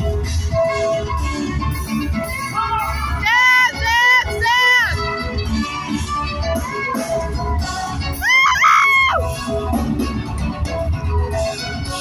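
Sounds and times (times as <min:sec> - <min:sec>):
live band music: 0:00.0 - 0:12.0.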